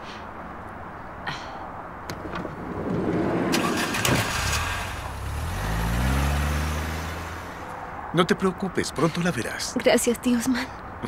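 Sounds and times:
minivan engine revving: 2.1s - 7.8s.

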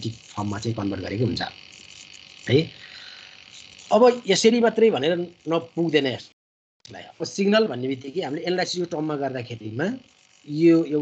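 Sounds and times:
person speaking: 0.0s - 1.6s, 2.4s - 11.0s.

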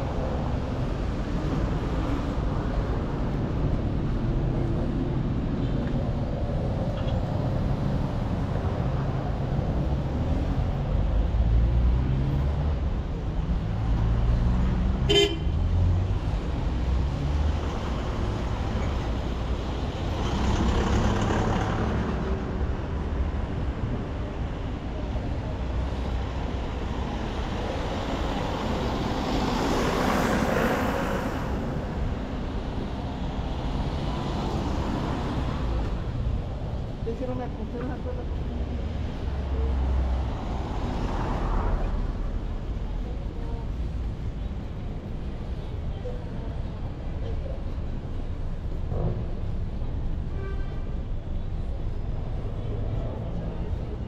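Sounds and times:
low rumble of vehicle engines: 0.0s - 54.0s
vehicles passing close by: 0.0s - 54.0s
car horn toot: 15.1s - 15.5s.

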